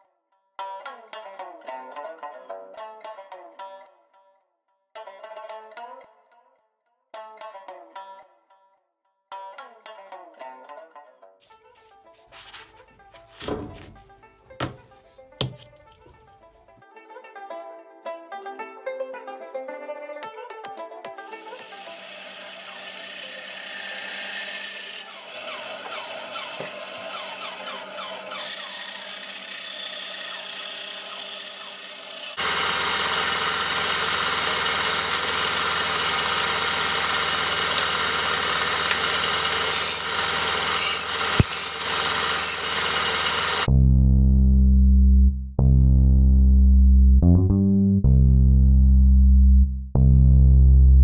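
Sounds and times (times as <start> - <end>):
bandsaw cutting metal: 21.1 - 43.7
belt sander grinding metal: 21.2 - 43.7.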